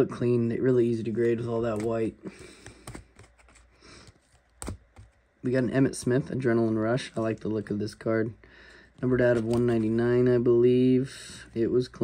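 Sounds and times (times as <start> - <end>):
plastic card holders clicking: 1.6 - 5.2.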